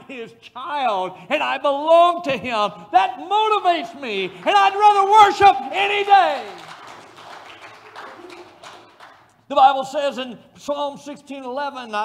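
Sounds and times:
scattered faint claps: 0:05.9 - 0:09.5.

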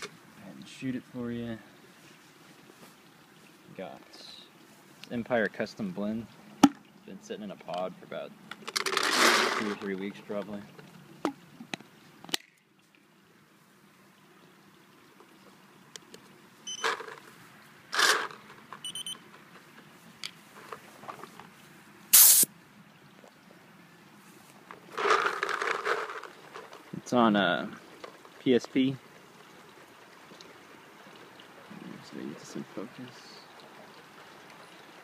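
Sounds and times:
paintball marker loud burst: 0:22.1 - 0:22.5.

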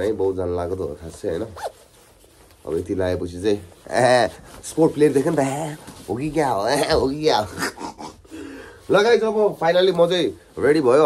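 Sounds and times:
jacket zipper zipping: 0:01.4 - 0:02.1.

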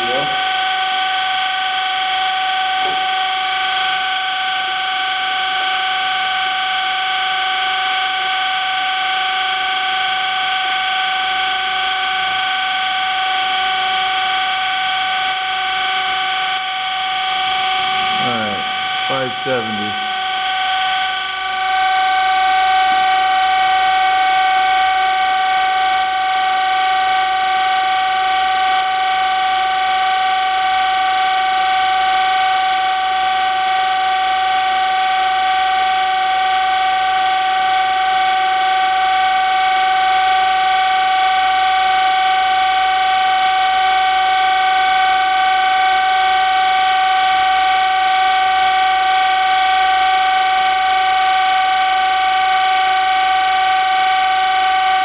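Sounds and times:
surface grinder whine: 0:00.0 - 0:55.0.

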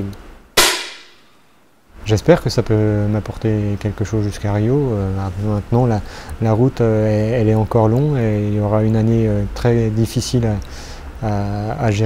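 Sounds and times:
air rifle shot with echo: 0:00.6 - 0:01.3.

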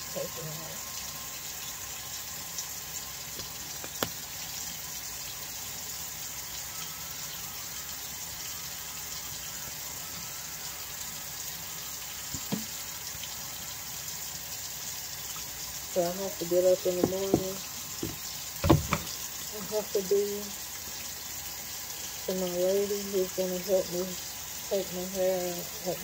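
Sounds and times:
faucet water streaming into sink: 0:00.0 - 0:26.0.

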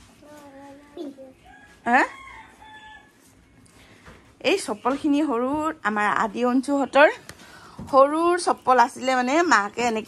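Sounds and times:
rooster crowing: 0:01.4 - 0:03.3.

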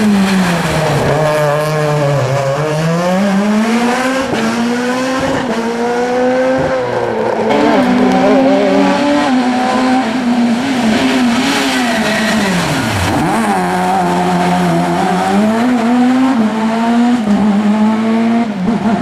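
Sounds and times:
rally car engines revving: 0:00.0 - 0:19.0.

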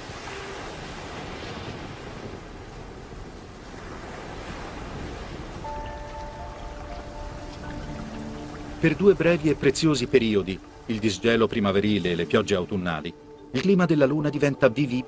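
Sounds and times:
storm waves breaking: 0:00.0 - 0:13.4
sustained music notes: 0:05.7 - 0:15.0.

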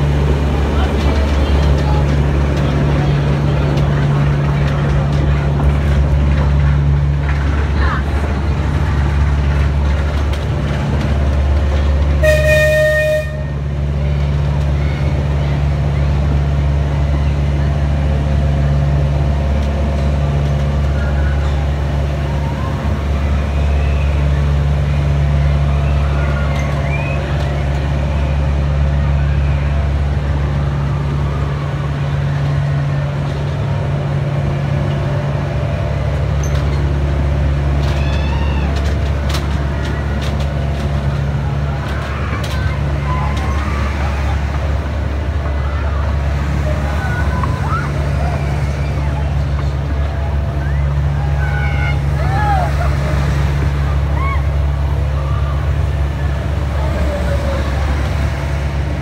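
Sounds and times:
diesel locomotive engine running: 0:00.0 - 0:59.0
locomotive horn: 0:12.2 - 0:13.8.

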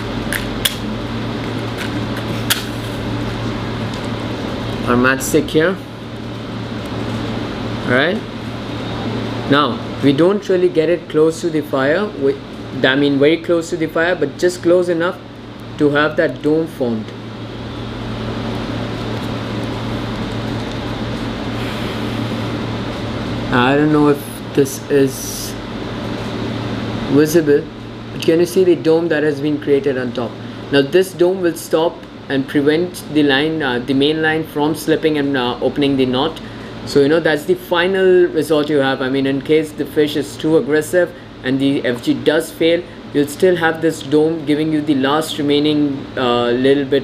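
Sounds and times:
air conditioner hum: 0:00.0 - 0:47.0.

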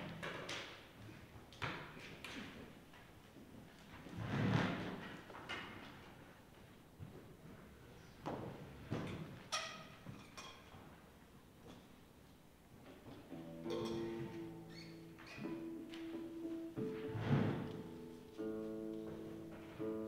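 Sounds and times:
instrument holding steady notes: 0:13.3 - 0:20.0
heavy thump: 0:16.8 - 0:17.9.

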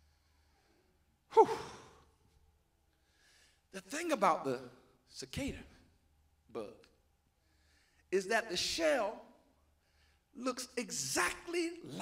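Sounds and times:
man sighing into a microphone: 0:01.3 - 0:02.1.

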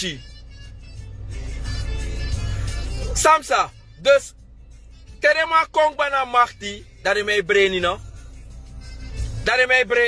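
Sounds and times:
vehicle engine rumble: 0:00.0 - 0:10.0.

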